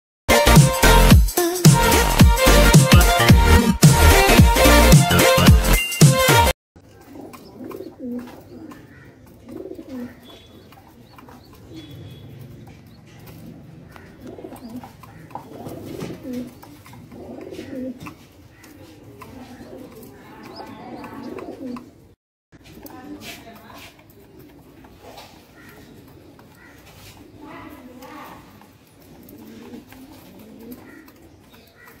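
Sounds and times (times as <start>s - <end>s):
pigeon cooing: 6.8s - 22.2s, 24.1s - 32.0s.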